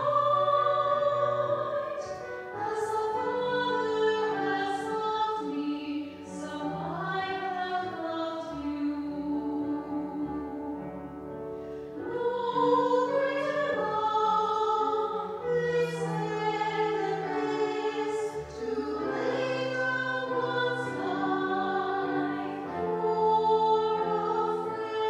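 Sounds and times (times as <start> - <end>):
choir singing a slow hymn: 0.0 - 25.0.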